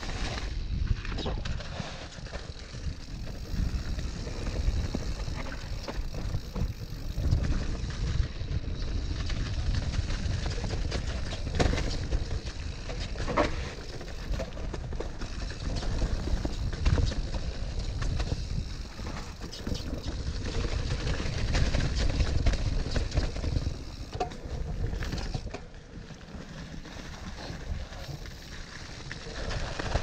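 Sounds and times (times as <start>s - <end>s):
bike rumbling over rough ground: 0.0s - 30.0s
bike knocks and rattles: 2.3s - 30.0s.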